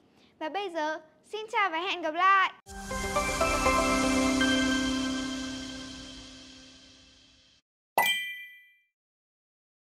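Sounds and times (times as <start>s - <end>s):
electronic music: 2.7s - 7.5s
bright metallic ding: 8.0s - 8.9s.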